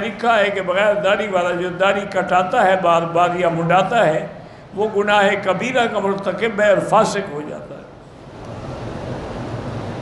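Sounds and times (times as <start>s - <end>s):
rushing room noise: 0.0s - 10.0s.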